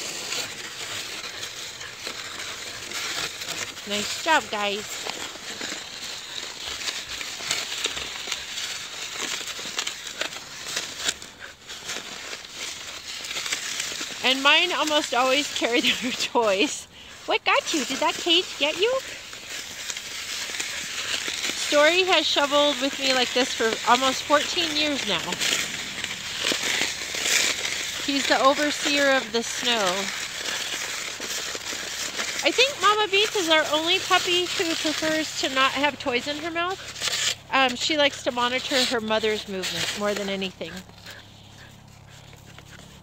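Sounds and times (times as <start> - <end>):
snow shovel scraping pavement: 0.0 - 43.0.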